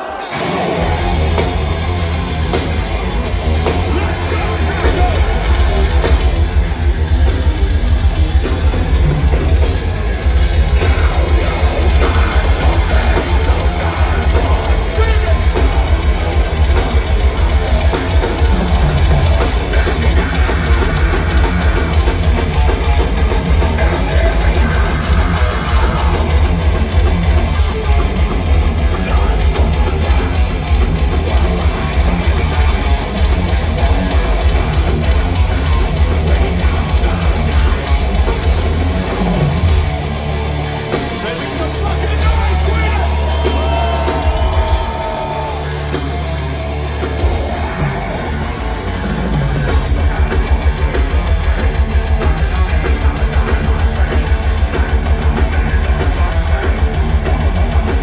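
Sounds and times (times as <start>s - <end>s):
heavy metal band playing live: 0.0s - 58.0s.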